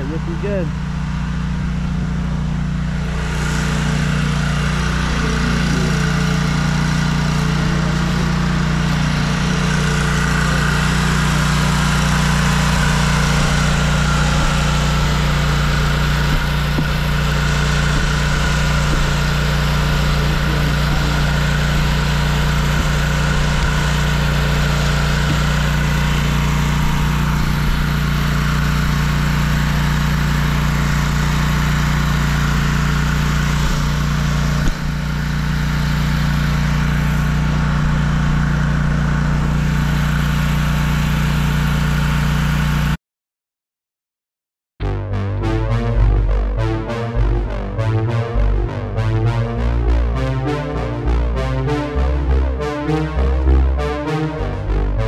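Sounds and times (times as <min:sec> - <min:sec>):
lawn mower engine hum: 0:00.0 - 0:43.0
cutting deck rushing: 0:02.7 - 0:41.8.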